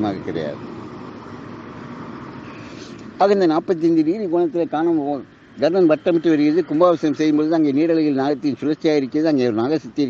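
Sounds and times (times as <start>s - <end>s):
steady hiss and hum: 0.0s - 10.0s.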